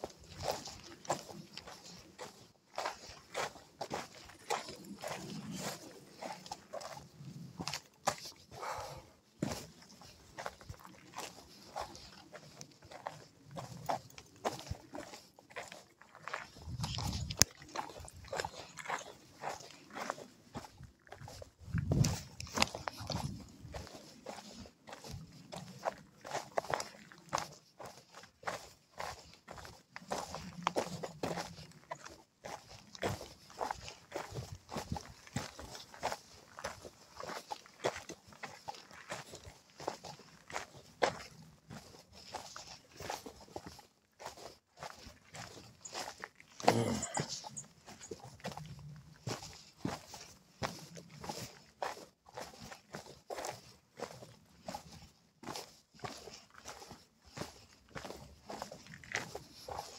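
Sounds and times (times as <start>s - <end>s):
footsteps on gravelly trail: 0.0s - 59.9s.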